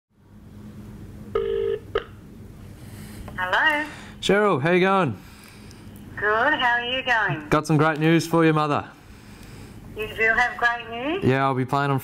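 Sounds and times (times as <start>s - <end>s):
telephone ringback tone: 1.4s - 2.0s.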